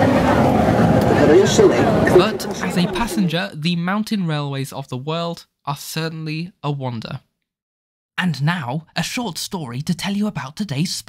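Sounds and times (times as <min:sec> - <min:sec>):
steam locomotive working hard: 0:00.0 - 0:03.3.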